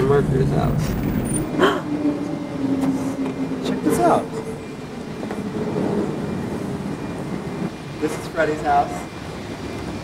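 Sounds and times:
street background rumble: 0:00.0 - 0:10.0.

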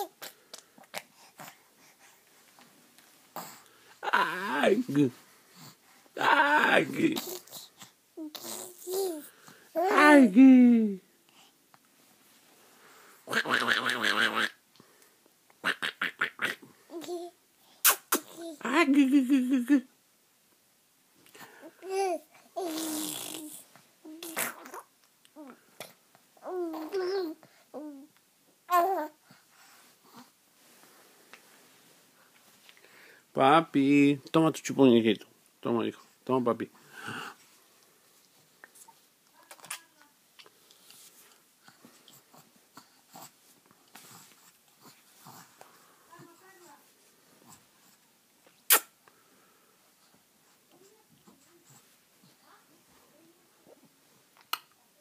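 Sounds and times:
baby cooing and babbling: 0:00.0 - 0:01.6, 0:05.6 - 0:10.1, 0:16.9 - 0:17.4, 0:18.1 - 0:18.7, 0:21.6 - 0:29.2, 0:39.4 - 0:40.1
baby sucking on a pacifier: 0:00.0 - 0:02.7, 0:17.6 - 0:18.4, 0:22.6 - 0:24.9, 0:38.2 - 0:46.7, 0:47.4 - 0:49.1.

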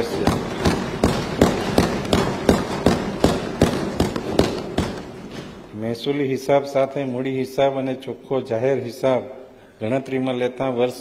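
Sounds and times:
people thumping desks: 0:00.0 - 0:05.8.

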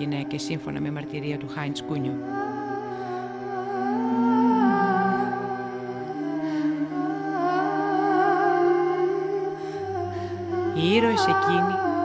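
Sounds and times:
hummed vocal melody: 0:00.0 - 0:12.0
long held low notes: 0:00.0 - 0:12.0.

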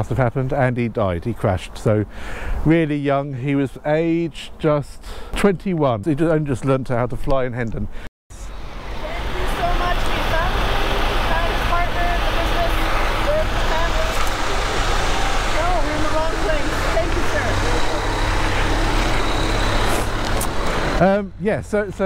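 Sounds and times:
diesel truck engine running: 0:08.4 - 0:22.0.

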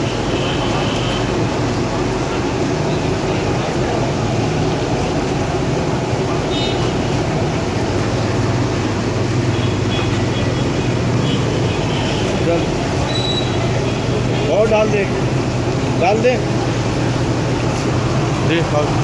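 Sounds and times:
low roadside rumble with hiss: 0:00.0 - 0:19.0.

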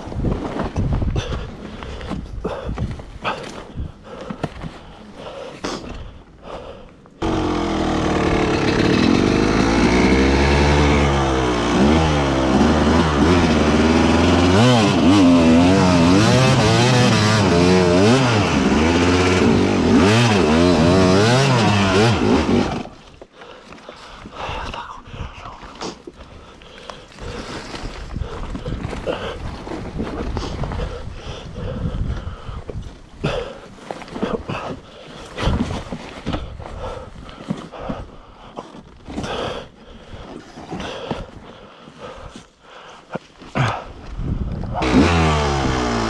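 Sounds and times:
dirt bike engine revving: 0:07.2 - 0:23.0, 0:44.8 - 0:46.0.

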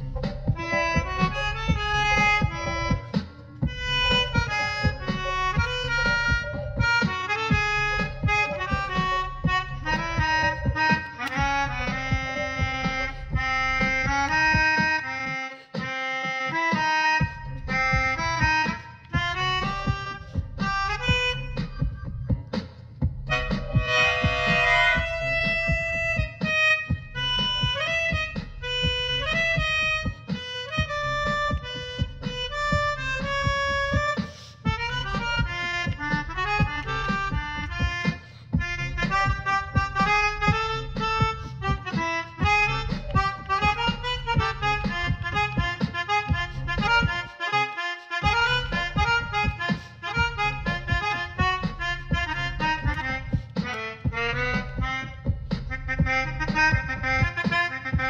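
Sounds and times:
melodica playing runs: 0:00.0 - 0:21.9, 0:23.3 - 0:58.0
low pulsing beat: 0:00.0 - 0:58.0.

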